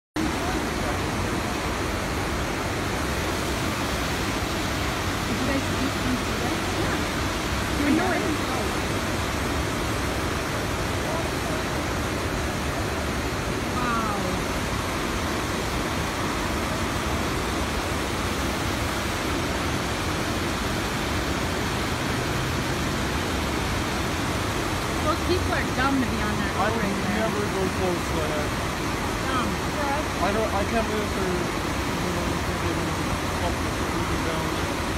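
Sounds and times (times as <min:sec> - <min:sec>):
river rushing over rocks: 0:00.2 - 0:34.9
faint voices: 0:05.2 - 0:09.0.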